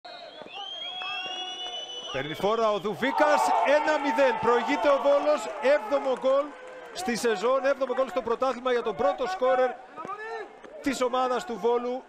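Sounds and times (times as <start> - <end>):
referee's whistle long blast: 0.1 - 2.4.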